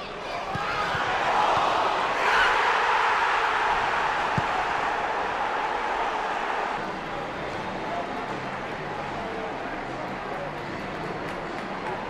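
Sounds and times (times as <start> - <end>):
stadium crowd roaring: 0.0 - 10.0.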